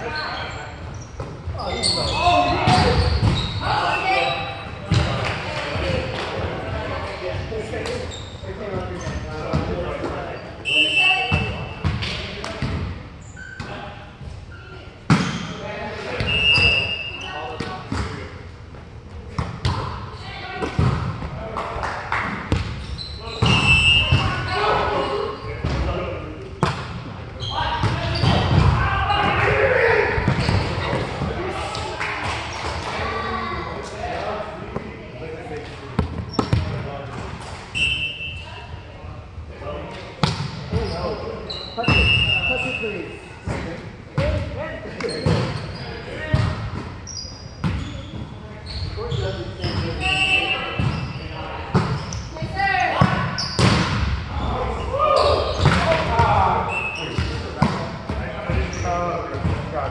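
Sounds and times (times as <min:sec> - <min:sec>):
players shouting: 0:28.6 - 0:30.4.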